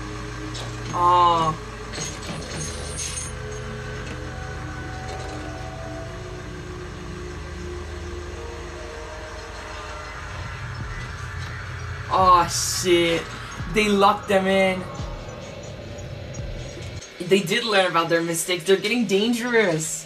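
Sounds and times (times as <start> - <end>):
steady low rumble: 0.0 - 19.3
tense background music: 0.0 - 20.0.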